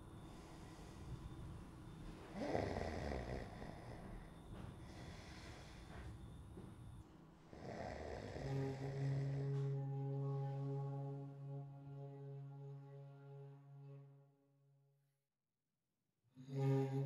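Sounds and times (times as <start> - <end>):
man snoring: 2.3 - 5.9, 7.5 - 9.5
low held music chord: 7.5 - 14.6.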